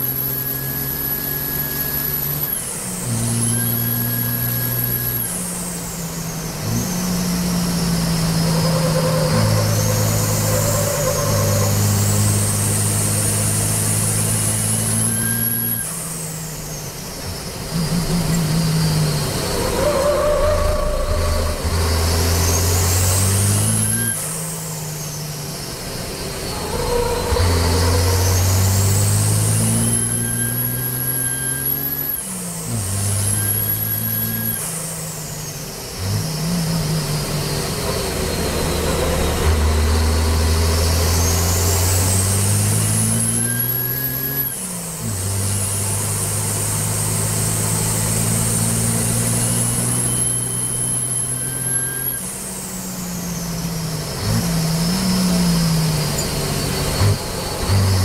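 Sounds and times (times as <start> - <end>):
high turbo whine: 0.0 - 58.0
truck engine under full throttle: 0.0 - 58.0.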